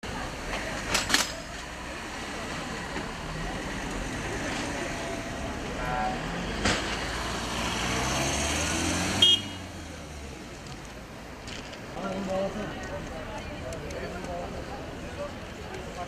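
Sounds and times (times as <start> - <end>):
van engine and tyres passing: 0.1 - 16.0
short horn toot: 9.2 - 9.6.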